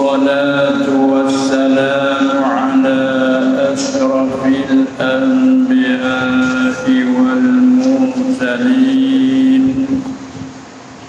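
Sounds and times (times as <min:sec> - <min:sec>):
man chanting a long note: 0:00.0 - 0:10.3
low room noise: 0:00.0 - 0:11.0.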